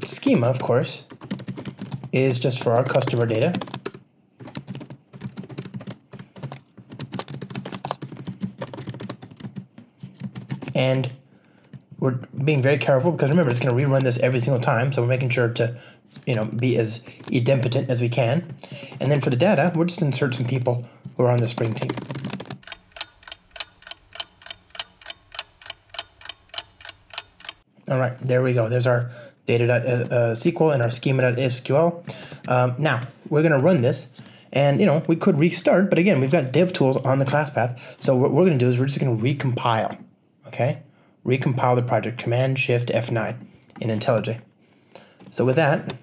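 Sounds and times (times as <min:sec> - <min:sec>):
computer keyboard typing: 0:00.3 - 0:11.8, 0:13.1 - 0:14.8, 0:16.1 - 0:17.9, 0:18.7 - 0:20.6, 0:21.3 - 0:27.6
clock ticking: 0:22.5 - 0:27.6.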